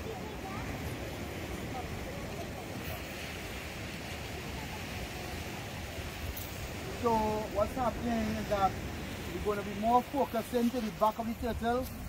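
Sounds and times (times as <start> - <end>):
faint voices: 0.0 - 12.0
surf rushing: 0.0 - 12.0
wind: 0.0 - 12.0.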